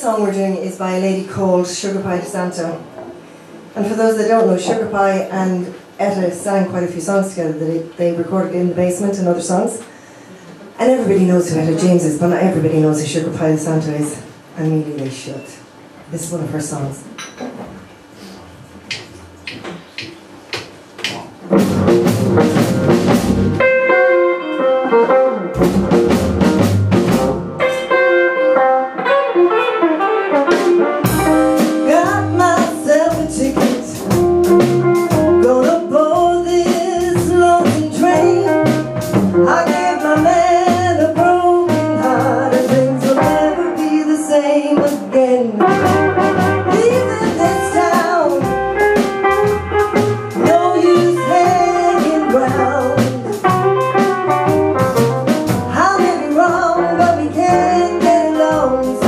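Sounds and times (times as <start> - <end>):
rhythm and blues band playing: 18.9 - 59.0
woman singing: 31.8 - 34.6, 35.3 - 46.1, 46.7 - 48.6, 50.4 - 53.6, 55.7 - 59.0.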